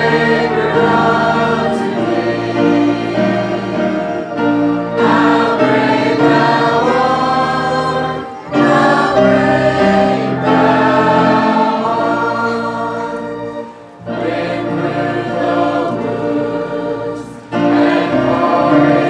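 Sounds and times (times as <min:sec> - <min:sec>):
church choir singing: 0:00.0 - 0:19.0
organ bass notes: 0:00.0 - 0:19.0.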